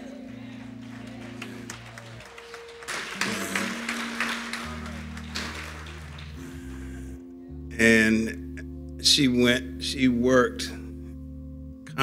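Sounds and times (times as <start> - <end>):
crowd clapping: 0.0 - 7.2
voices of congregation: 0.0 - 7.2
soft sustained chords: 0.0 - 12.0.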